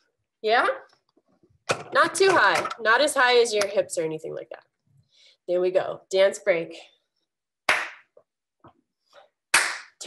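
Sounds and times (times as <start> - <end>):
hand clap: 7.7 - 8.2, 9.5 - 10.0.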